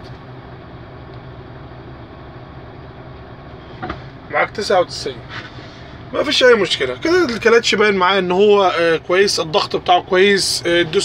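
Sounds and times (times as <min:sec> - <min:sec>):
truck diesel engine idling: 0:00.0 - 0:11.0.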